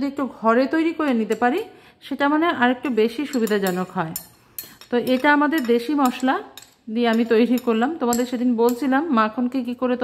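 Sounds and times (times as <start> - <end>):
woman talking: 0.0 - 10.0
knife scraping bowls: 3.1 - 9.0.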